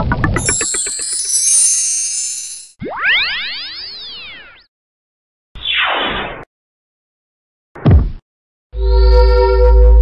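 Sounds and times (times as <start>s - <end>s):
synth effect sweeping up and down: 0.0s - 3.6s
high shimmering tail: 0.4s - 2.7s.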